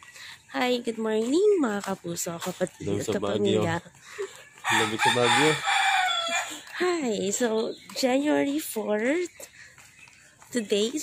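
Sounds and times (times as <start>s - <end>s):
rooster crowing: 4.4s - 6.6s.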